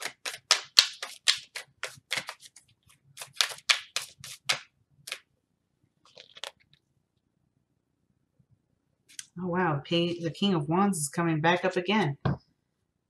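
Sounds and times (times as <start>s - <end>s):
cards being shuffled: 0.0s - 5.2s, 6.0s - 6.8s.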